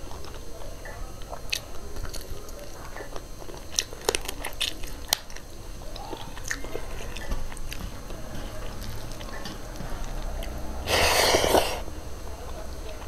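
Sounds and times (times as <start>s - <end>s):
crunching food: 0.0s - 13.0s
person chewing food: 0.0s - 13.0s.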